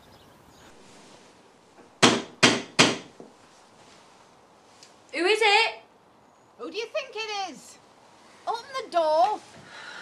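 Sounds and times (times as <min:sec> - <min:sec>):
loud knocks on a door: 0:02.0 - 0:03.2.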